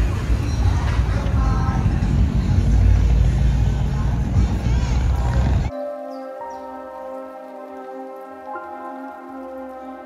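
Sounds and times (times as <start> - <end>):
car engine rumbling: 0.0 - 5.7.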